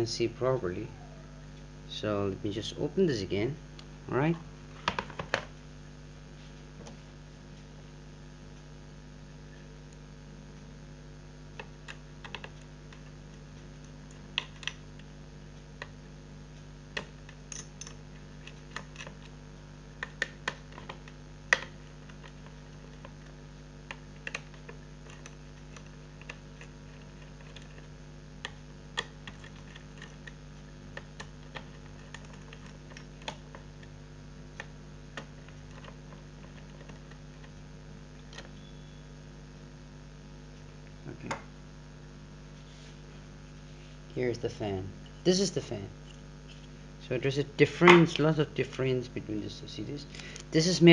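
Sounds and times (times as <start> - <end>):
steady low hum: 0.0 - 50.9.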